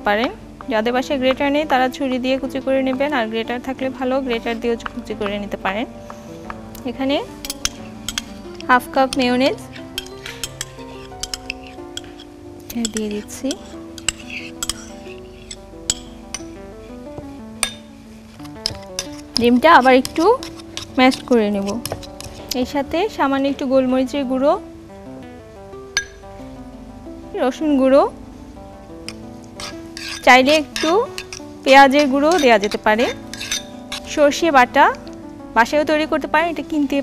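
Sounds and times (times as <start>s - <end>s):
soft background music: 0.0s - 37.0s
metal spoon scraping ceramic ramekin: 7.4s - 16.6s, 17.6s - 22.7s, 29.1s - 34.2s
utensil clinking against bowl: 7.4s - 16.6s, 17.6s - 22.6s, 29.1s - 34.1s.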